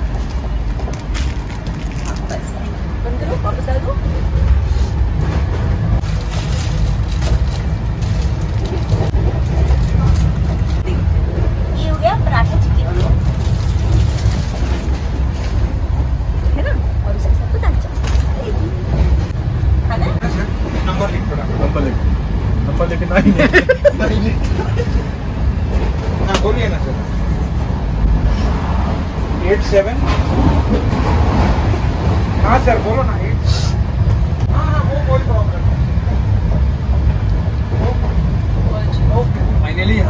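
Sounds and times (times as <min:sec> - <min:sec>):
train rumbling: 0:00.0 - 0:40.0
people talking: 0:02.0 - 0:04.4, 0:11.7 - 0:13.2, 0:16.5 - 0:18.7
people laughing: 0:23.0 - 0:25.2.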